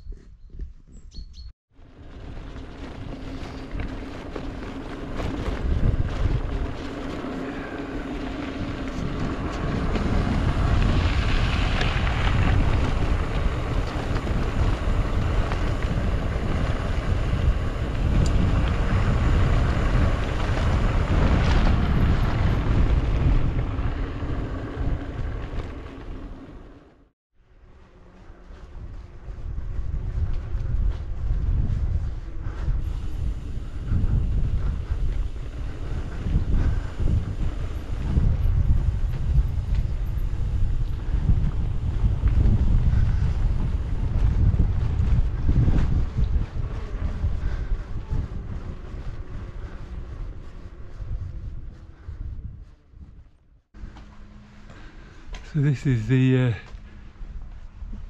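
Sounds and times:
wind rushing over microphone: 0.0 - 27.0, 27.6 - 58.0
tyres rolling on gravel: 1.8 - 27.0, 32.8 - 50.8.

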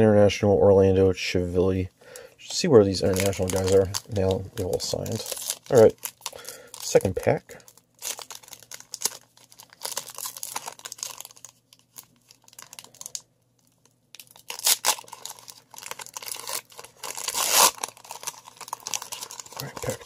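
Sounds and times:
foil wrapper tearing and crinkling: 2.9 - 20.0.

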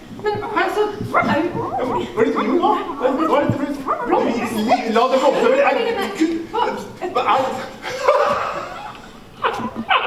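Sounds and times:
dog-like whimpering and yipping: 1.0 - 4.8, 9.4 - 10.0.

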